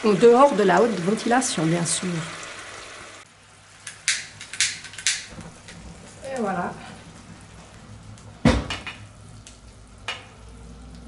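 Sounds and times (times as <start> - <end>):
caramel sizzling in a frying pan: 0.0 - 11.0.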